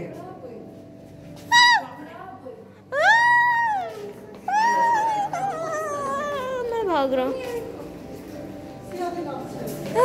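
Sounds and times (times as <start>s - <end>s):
child wailing: 3.0s - 6.7s.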